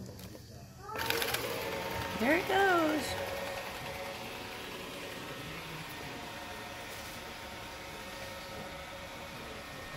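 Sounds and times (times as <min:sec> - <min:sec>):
robot vacuum motor whirring: 0:01.0 - 0:09.9.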